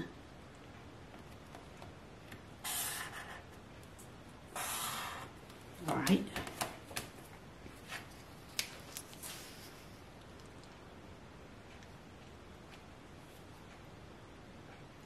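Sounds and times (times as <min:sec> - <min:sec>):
marker scratching along ruler: 0:02.6 - 0:03.6, 0:04.5 - 0:05.4.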